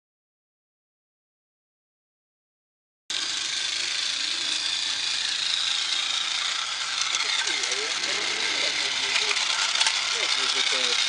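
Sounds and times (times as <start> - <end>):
model train motor whine: 3.1 - 11.0
wheels clicking on rails: 3.1 - 11.0.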